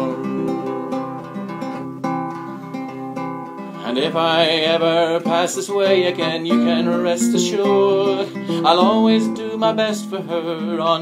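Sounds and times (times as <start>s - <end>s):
man singing: 0.0s - 1.3s, 3.8s - 11.0s
classical guitar strumming chords: 0.0s - 11.0s.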